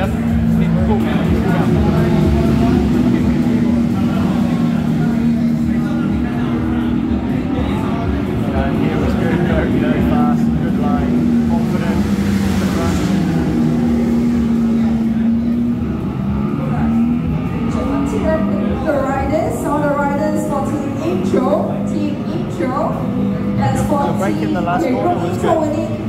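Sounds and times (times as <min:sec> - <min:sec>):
motorcycle engine revving on track: 0:00.0 - 0:26.0
voices murmuring: 0:00.0 - 0:26.0.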